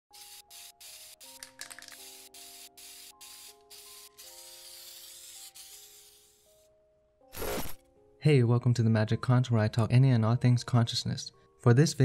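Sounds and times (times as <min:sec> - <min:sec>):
spray paint can hissing: 0:00.1 - 0:06.6.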